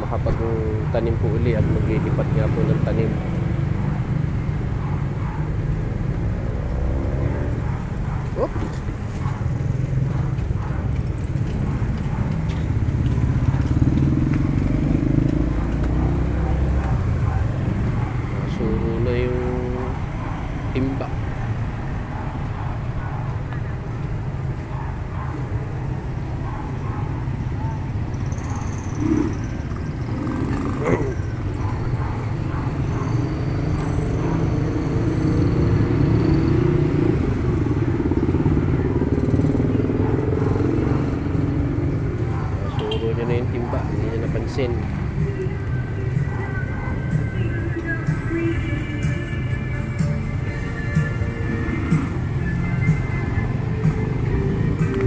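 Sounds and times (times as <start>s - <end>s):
motorbike engines passing: 0.0s - 55.0s.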